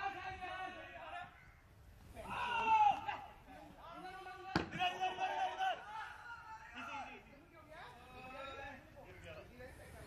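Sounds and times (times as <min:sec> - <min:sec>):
voices shouting and calling out: 0:00.0 - 0:10.0.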